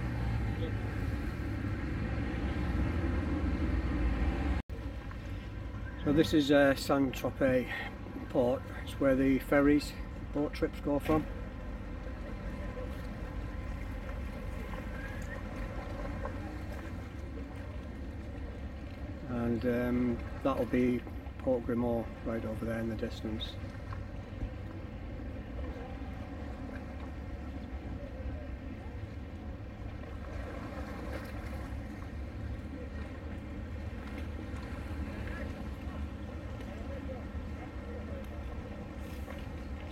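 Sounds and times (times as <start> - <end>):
low outdoor rumble: 0.0 - 39.9.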